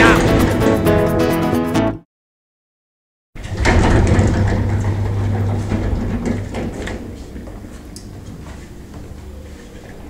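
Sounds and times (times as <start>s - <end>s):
lift humming: 3.4s - 10.0s
sliding doors opening: 3.4s - 10.0s.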